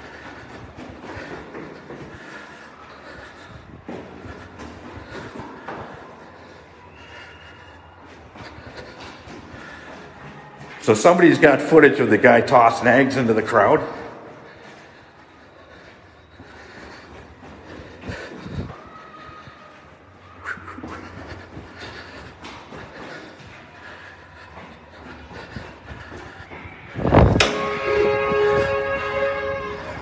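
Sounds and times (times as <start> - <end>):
faint footsteps in stairwell: 0.0 - 30.0
vehicle horn steady chord: 27.4 - 30.0.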